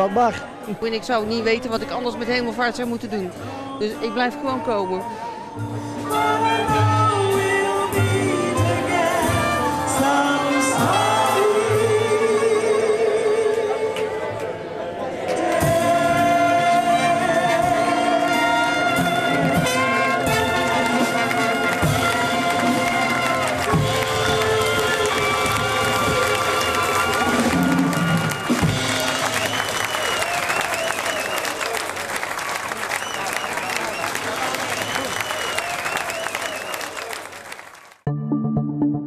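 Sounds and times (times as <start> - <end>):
jazz band playing: 0.0 - 14.2, 15.3 - 32.2
woman singing: 1.4 - 5.4
audience applauding and cheering: 14.0 - 38.1.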